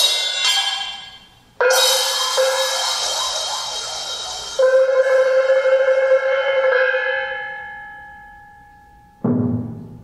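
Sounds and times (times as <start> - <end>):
held pitched reed tone: 0.0 - 6.7
cymbal shimmer: 0.0 - 9.1
higher ringing tone: 1.7 - 9.1.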